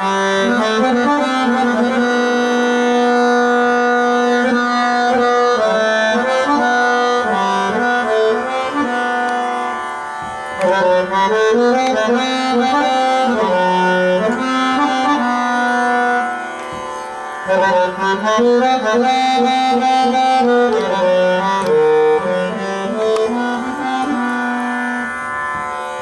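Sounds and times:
harmonium playing slow melody: 0:00.0 - 0:26.0.

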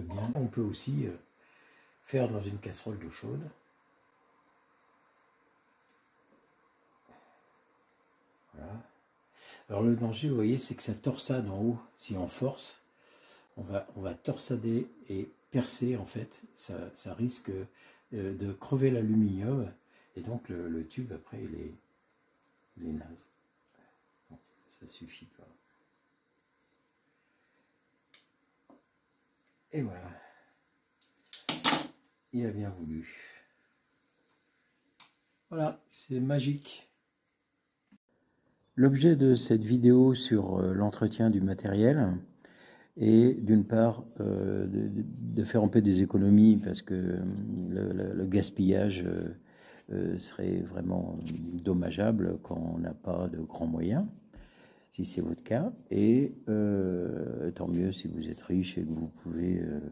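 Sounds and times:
faint room hiss: 0:00.0 - 0:59.9
cap cracking loose: 0:31.3 - 0:32.0.

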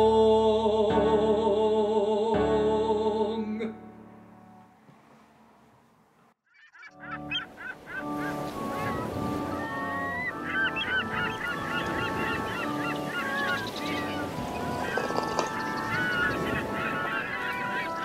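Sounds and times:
honking bird calls: 0:06.5 - 0:18.0
instrumental music of sustained notes: 0:06.9 - 0:18.0.

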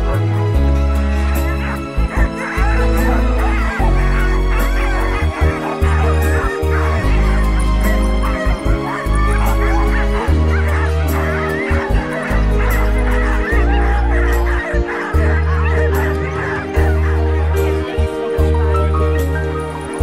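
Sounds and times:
huskies yelping and howling: 0:00.0 - 0:20.0
music with heavy bass: 0:00.0 - 0:20.0.

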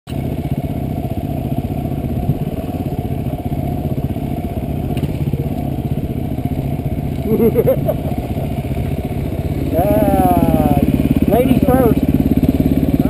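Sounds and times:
motorcycle engine running: 0:00.1 - 0:13.0.

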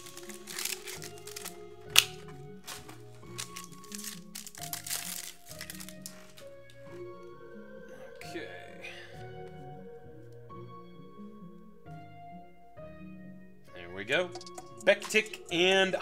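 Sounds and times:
trading cards clicking and snapping: 0:00.0 - 0:06.5
quiet background music: 0:00.0 - 0:16.0.

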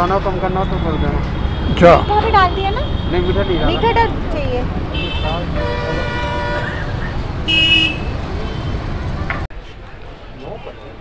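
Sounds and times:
low traffic rumble: 0:00.0 - 0:11.0
vehicle horns honking: 0:00.4 - 0:04.1, 0:04.9 - 0:08.9.

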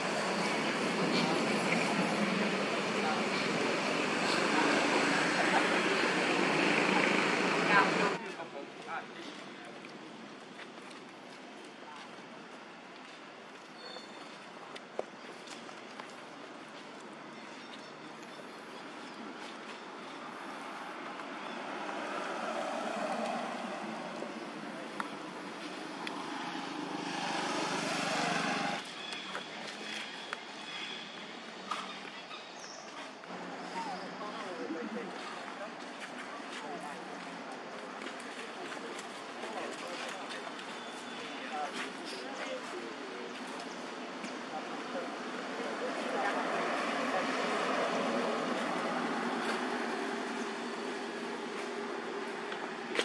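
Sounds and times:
indistinct voices: 0:00.0 - 0:09.8
outdoor background din: 0:00.0 - 0:53.0
traffic noise: 0:00.0 - 0:53.0.

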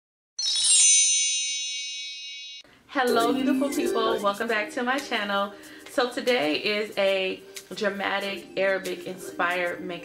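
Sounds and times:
bright high chime: 0:00.4 - 0:04.5.

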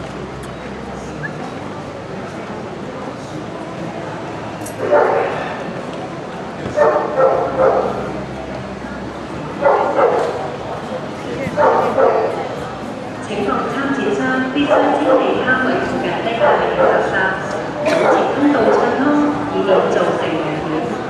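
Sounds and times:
murmur of large hall: 0:00.0 - 0:21.0
dog barking: 0:04.8 - 0:05.4, 0:06.8 - 0:08.0, 0:09.6 - 0:10.4, 0:11.6 - 0:12.4, 0:14.7 - 0:15.3, 0:16.4 - 0:17.1.

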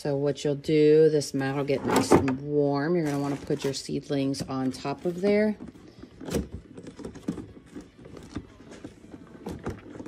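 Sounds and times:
hard plastic knocks and rattles: 0:03.2 - 0:10.0.

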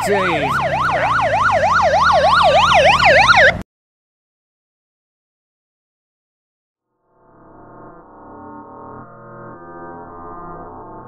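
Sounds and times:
siren in fast yelp mode: 0:00.0 - 0:03.6.

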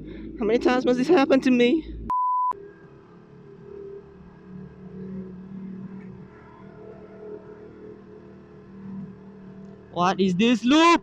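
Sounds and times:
motorcycle engine at low revs: 0:00.0 - 0:10.4.

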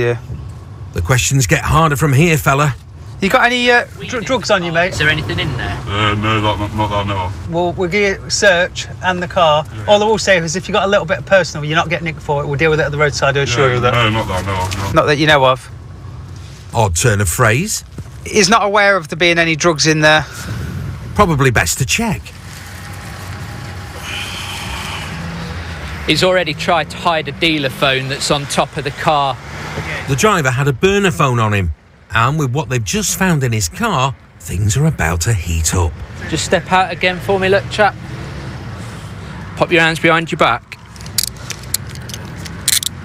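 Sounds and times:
low rumble of motor vehicles: 0:00.0 - 0:43.0
handcuffs jingling and clicking: 0:40.8 - 0:43.0.

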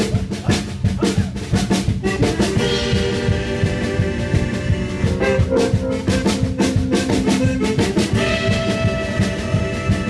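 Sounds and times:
live band playing: 0:00.0 - 0:10.0
higher held note: 0:02.4 - 0:10.0.

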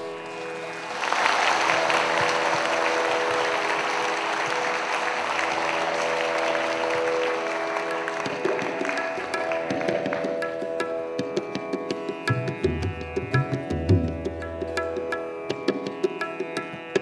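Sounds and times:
audience applause: 0:00.0 - 0:10.6
musical drone of sustained notes: 0:00.0 - 0:11.2.

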